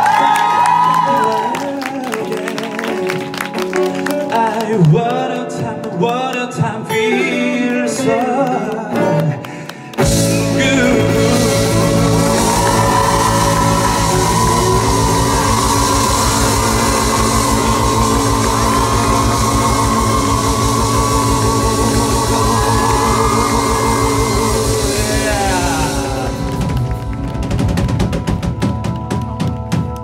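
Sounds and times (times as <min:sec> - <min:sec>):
rock band playing: 0:01.9 - 0:30.0
held lead guitar line: 0:07.1 - 0:28.6
fast drum beat: 0:10.0 - 0:29.8.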